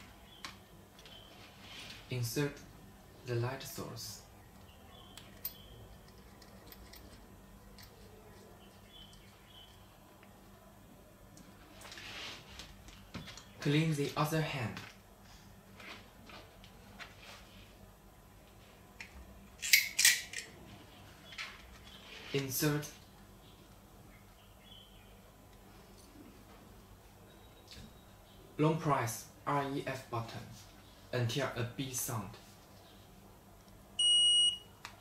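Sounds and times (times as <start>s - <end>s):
high steady beep: 34.0s - 34.6s.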